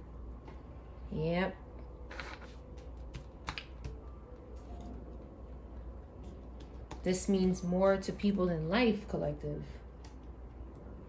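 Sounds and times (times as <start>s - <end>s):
cards clicking and tapping on table: 2.2s - 4.0s.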